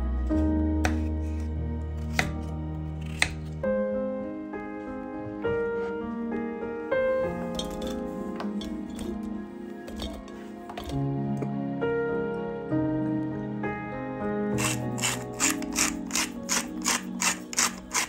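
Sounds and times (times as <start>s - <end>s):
instrumental background music: 0.0s - 18.0s.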